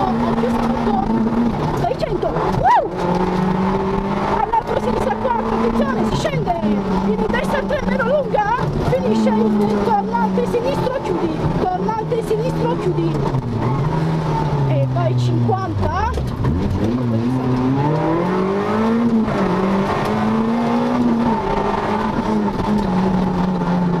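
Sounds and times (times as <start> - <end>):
car engine revving: 0.0 - 24.0.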